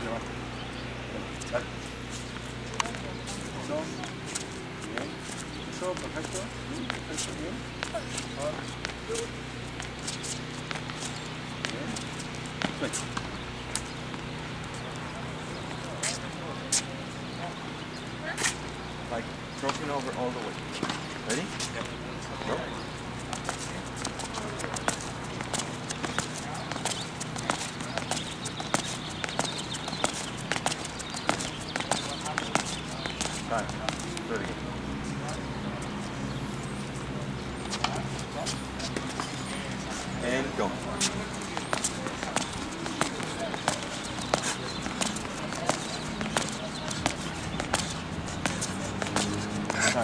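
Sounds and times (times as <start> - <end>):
shoes tapping on hard court: 1.4 - 16.9, 19.6 - 34.7, 37.6 - 50.0.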